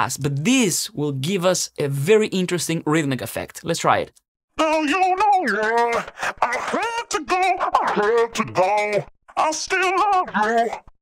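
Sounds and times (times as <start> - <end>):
stuttering distorted singing: 4.6 - 10.9.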